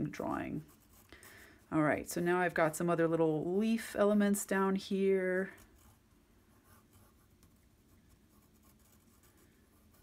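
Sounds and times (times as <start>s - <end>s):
pencil scratching on paper: 0.1s - 1.7s, 5.5s - 10.0s.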